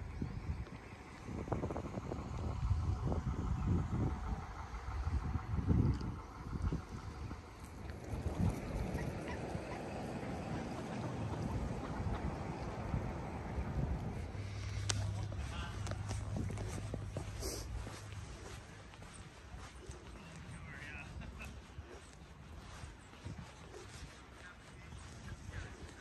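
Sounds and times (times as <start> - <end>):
low steady rumble: 0.0 - 26.0
wind buffeting microphone: 0.0 - 26.0
footsteps on paved path: 7.3 - 26.0.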